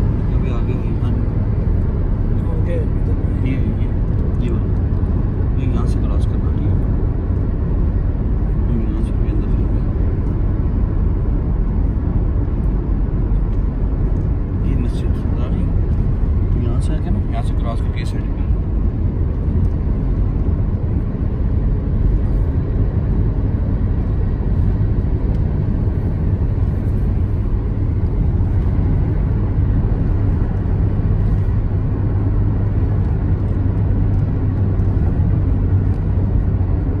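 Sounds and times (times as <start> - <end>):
road and engine rumble in car: 0.0 - 37.0.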